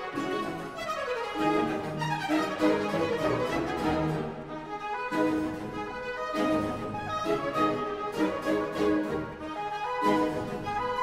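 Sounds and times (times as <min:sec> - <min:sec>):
baroque string orchestra playing: 0:00.0 - 0:11.0.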